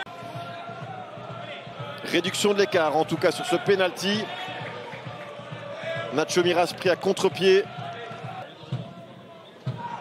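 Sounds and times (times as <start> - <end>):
scattered crowd voices: 0.0 - 10.0.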